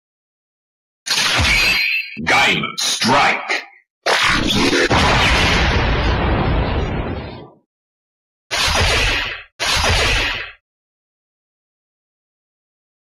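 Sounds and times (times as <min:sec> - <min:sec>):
blast sound effect: 0:04.4 - 0:07.6.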